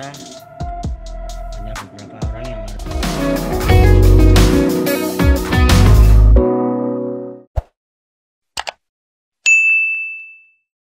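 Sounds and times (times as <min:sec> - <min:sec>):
outro music: 0:00.0 - 0:07.4
notification bell ding: 0:09.5 - 0:10.7.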